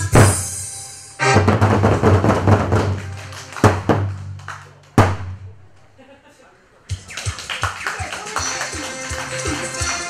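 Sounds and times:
backing music: 0.0 - 5.5, 6.8 - 10.0
barrel drums beaten: 0.0 - 5.6.

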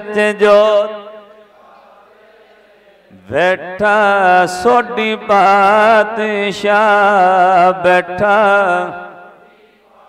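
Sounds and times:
man chanting: 0.0 - 1.3, 3.1 - 9.4.

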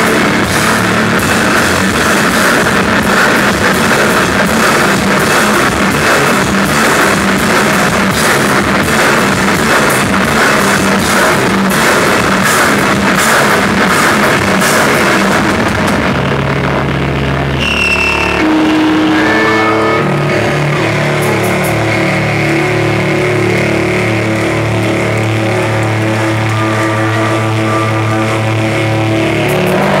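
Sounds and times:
droning bass and guitar: 0.0 - 30.0
drums and cymbals crashing: 0.0 - 30.0
high feedback whine: 0.0 - 30.0.

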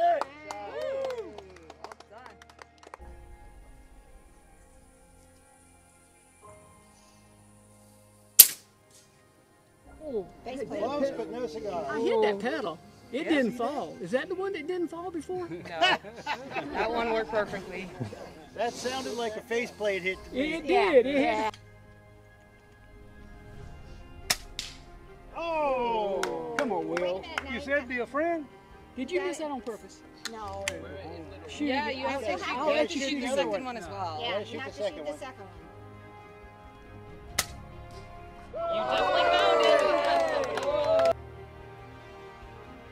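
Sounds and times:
quiet background music: 0.0 - 42.9
air rifle shot crack: 8.4 - 8.7.

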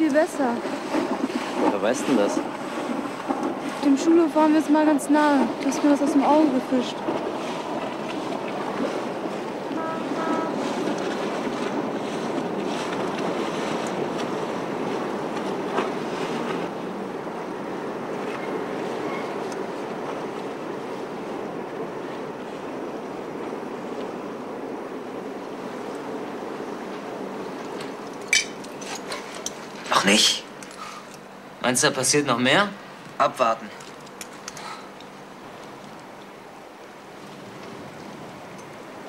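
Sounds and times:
rushing water: 0.0 - 39.0
wind: 0.0 - 39.0.

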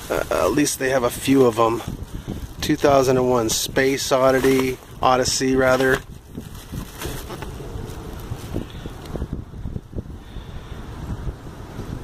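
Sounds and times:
plastic bag rustling: 0.0 - 9.2
wind rumbling on microphone: 0.0 - 12.0.

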